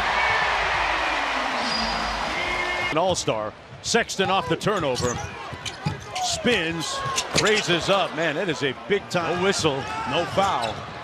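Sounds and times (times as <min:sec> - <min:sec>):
arena crowd cheering: 0:00.0 - 0:03.0, 0:06.1 - 0:11.0.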